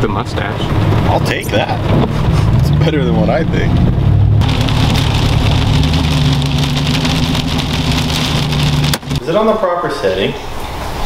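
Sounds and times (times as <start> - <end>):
truck engine hum: 0.0 - 9.8
tyre and road noise: 0.0 - 11.0.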